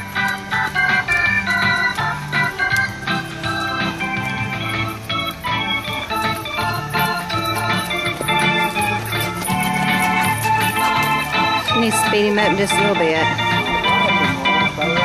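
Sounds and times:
organ music: 0.0s - 15.0s.

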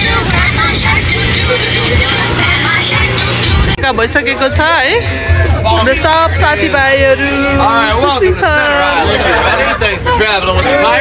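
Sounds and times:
song with singing over a beat: 0.0s - 11.0s.

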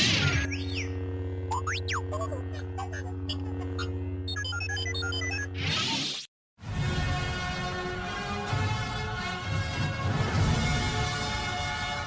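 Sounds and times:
lightsaber electric hum: 0.0s - 5.7s.

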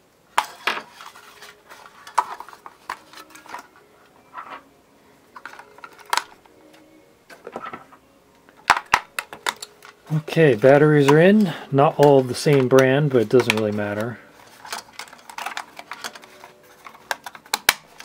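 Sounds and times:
batteries clicking into battery compartment: 8.6s - 10.0s, 12.5s - 18.0s.

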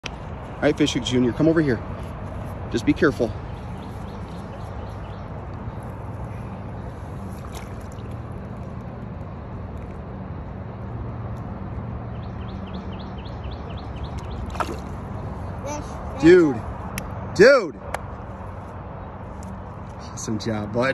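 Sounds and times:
outdoor rumble and hiss: 0.0s - 20.9s.

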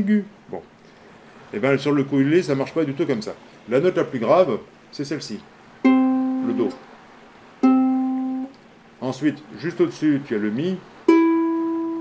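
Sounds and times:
ukulele string plucked: 5.8s - 6.8s, 7.6s - 8.6s, 11.1s - 12.0s.

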